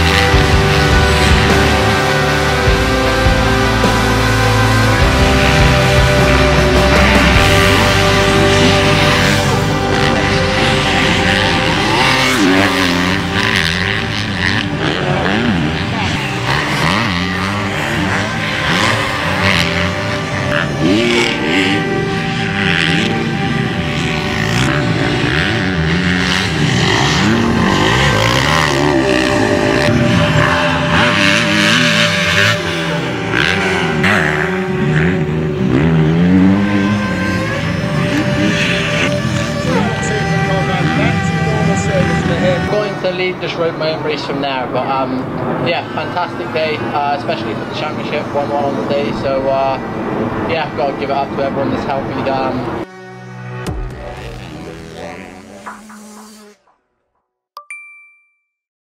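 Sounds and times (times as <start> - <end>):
motocross bike engines revving: 0.0 - 56.7
background music: 0.0 - 56.9.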